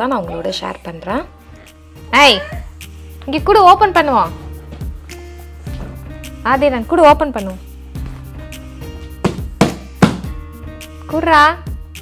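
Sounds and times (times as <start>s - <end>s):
background music: 0.0s - 12.0s
hands slapping cardboard box: 9.3s - 10.3s.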